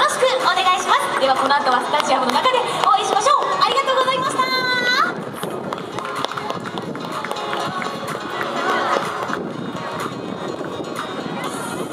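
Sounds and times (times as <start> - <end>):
outdoor crowd: 0.0 - 11.9.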